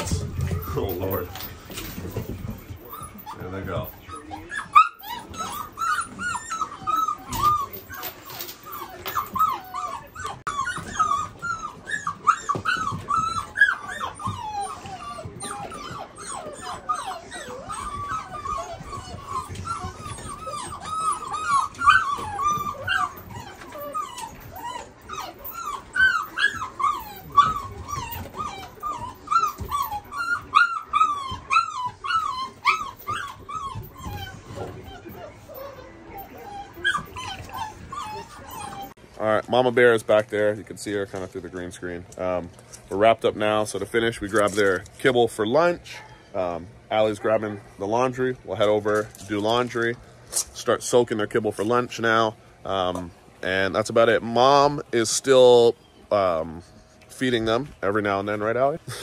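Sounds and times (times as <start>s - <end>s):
puppies whimpering and yipping: 0.0s - 39.2s, 41.9s - 59.0s.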